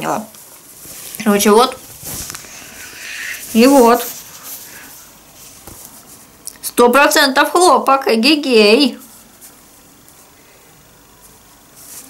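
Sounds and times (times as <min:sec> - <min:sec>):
towel rustling: 0:00.4 - 0:06.4, 0:11.2 - 0:12.0.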